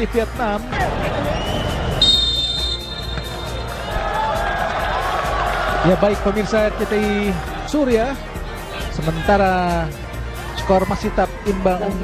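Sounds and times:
stadium crowd noise: 0.0 - 12.0
referee's whistle blast: 1.4 - 3.9.

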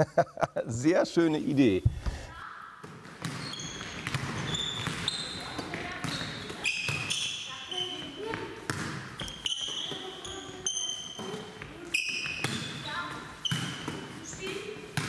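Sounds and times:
shoe squeaks on hall floor: 3.2 - 14.7.

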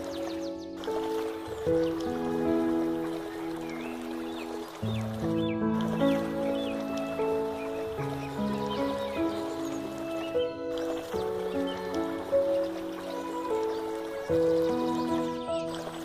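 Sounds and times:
gentle piano music: 0.0 - 16.0.

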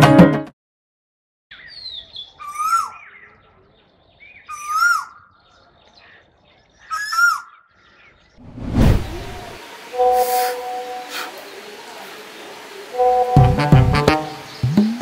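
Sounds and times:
bird chirps: 1.5 - 8.4
rising whoosh: 8.4 - 9.6.

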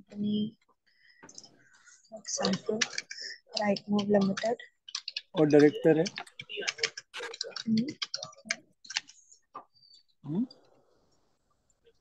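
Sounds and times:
computer keyboard typing: 2.2 - 9.3
vocal murmur: 10.2 - 10.7.

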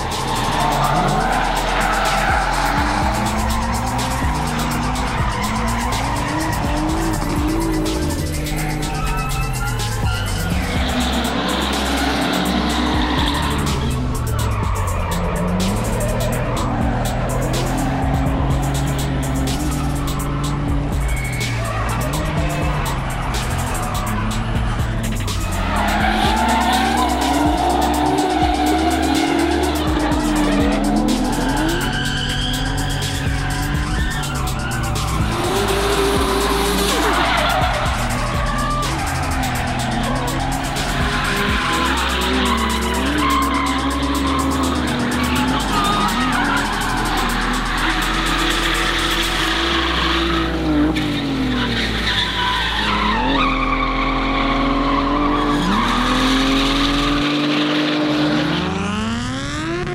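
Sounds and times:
background music with bass line: 0.0 - 59.9
car engine revving: 0.0 - 59.9
tyres squealing and skidding: 0.0 - 59.9.

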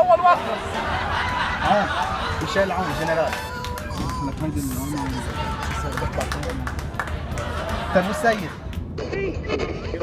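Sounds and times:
road rumble inside car: 0.0 - 10.0.

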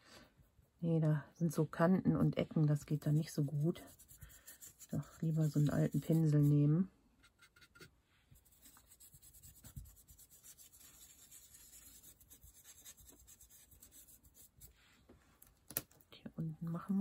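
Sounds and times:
paintbrush scratching through stencil: 2.9 - 15.0.

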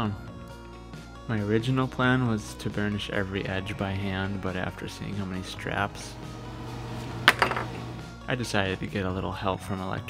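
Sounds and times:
quiet background music: 0.0 - 10.0
hard objects clinking: 7.1 - 8.0.

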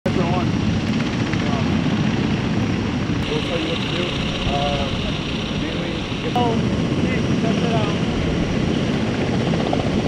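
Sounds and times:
men talking: 0.1 - 0.6, 1.3 - 1.9, 3.2 - 8.2
loud low rumble: 3.2 - 8.7.

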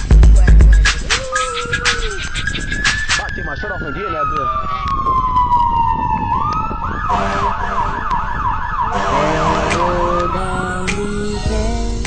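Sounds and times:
siren wailing and yelping: 0.8 - 10.7.

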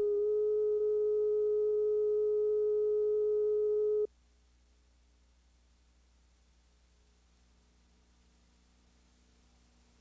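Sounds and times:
steady test tone beep: 0.0 - 4.1.

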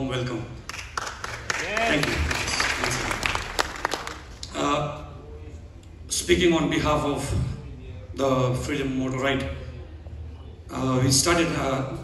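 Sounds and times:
audience applauding: 0.7 - 4.5.

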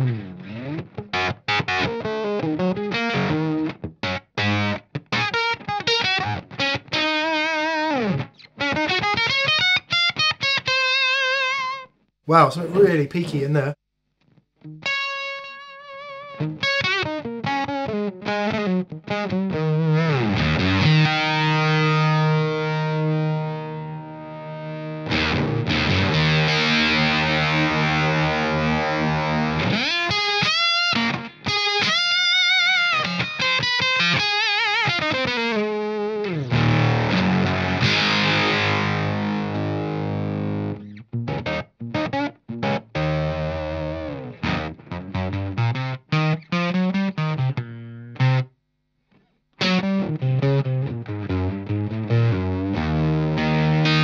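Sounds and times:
distorted electric guitar: 0.0 - 9.1, 14.8 - 48.5, 49.6 - 54.0.

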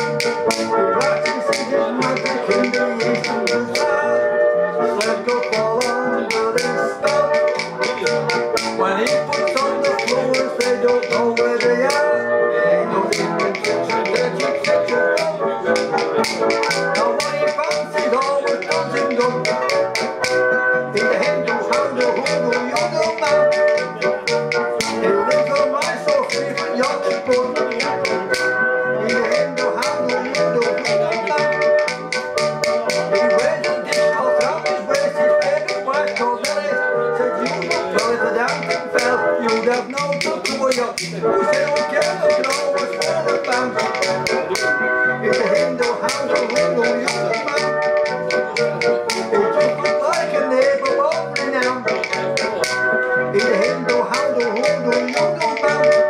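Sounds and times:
percussion clicks: 0.0 - 4.0, 5.0 - 12.2, 13.1 - 56.0
banjolele strummed: 0.0 - 4.1, 4.8 - 56.0.

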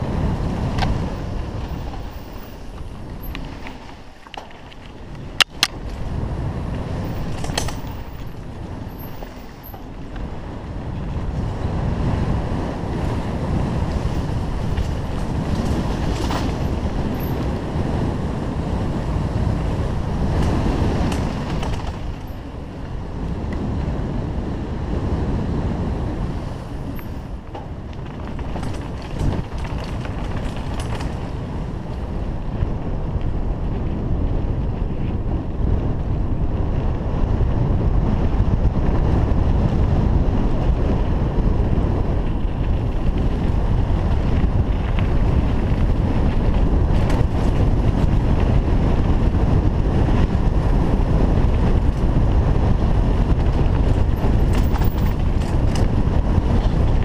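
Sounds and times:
bike rolling over dirt trail: 0.0 - 57.0
wind noise on microphone: 0.0 - 57.0.

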